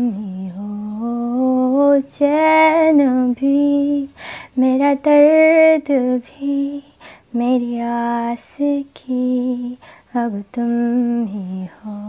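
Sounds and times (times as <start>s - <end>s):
woman singing slow melody: 0.0s - 12.0s.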